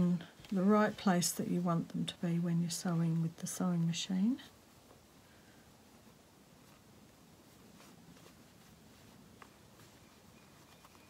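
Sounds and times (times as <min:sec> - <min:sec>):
fabric and pins rustling: 0:00.0 - 0:11.0.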